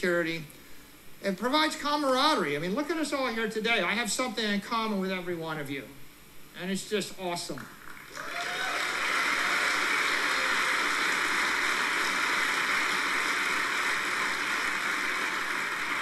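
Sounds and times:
audience applauding: 7.8s - 16.0s.

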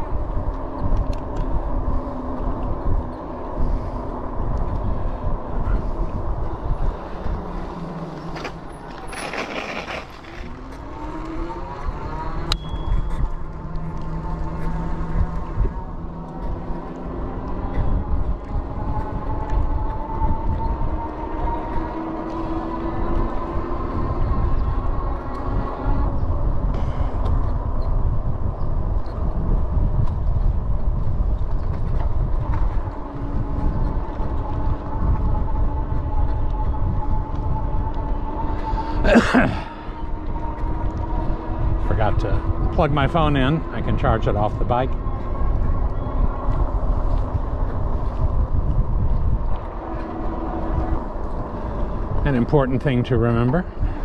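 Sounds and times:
wind rumble on microphone: 0.0s - 54.0s
electric bike motor whining: 0.1s - 54.0s.

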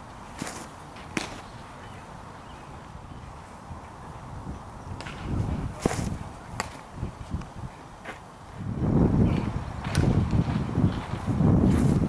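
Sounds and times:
baseball popping into mitt: 0.4s - 1.4s.

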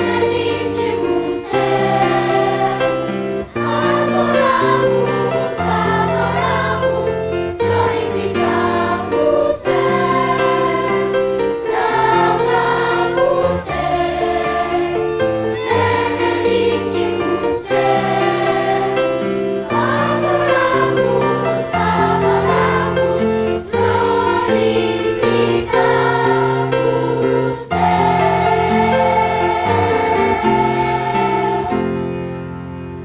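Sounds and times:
children's choir singing a hymn: 0.0s - 32.5s.

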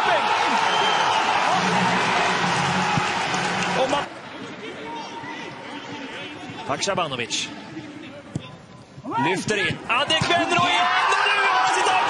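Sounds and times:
crowd cheering and shouting: 0.0s - 6.8s, 9.1s - 12.0s.

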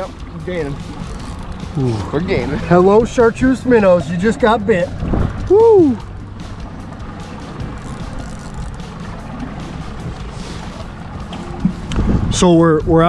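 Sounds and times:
background music: 0.0s - 13.0s
outboard motor humming: 0.0s - 13.0s.

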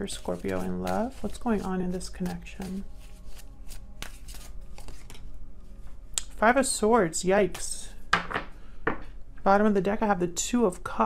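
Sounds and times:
cards shuffled by hand: 0.0s - 5.2s.

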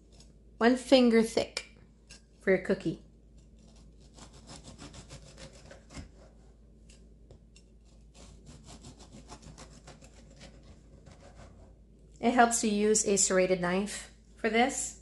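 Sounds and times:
knife sawing through biscuit: 3.5s - 6.5s, 7.8s - 11.8s.

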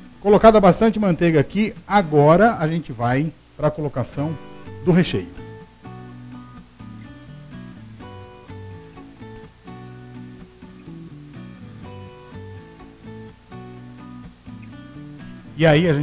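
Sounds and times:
acoustic guitar playing: 0.0s - 16.0s.

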